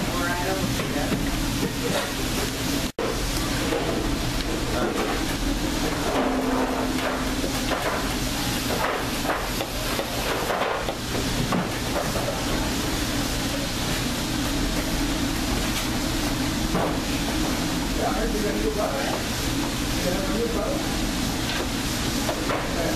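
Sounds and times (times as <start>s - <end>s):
low machine hum: 0.0s - 22.9s.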